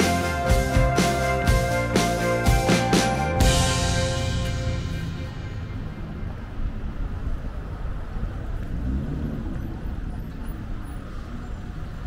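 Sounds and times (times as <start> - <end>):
road vehicles humming: 0.0 - 12.0.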